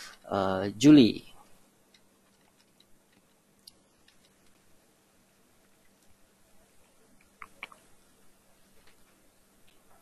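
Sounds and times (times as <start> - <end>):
person speaking: 0.0 - 1.5
faint steady hum: 0.0 - 10.0
computer keys clicking: 1.9 - 4.6, 7.2 - 7.8.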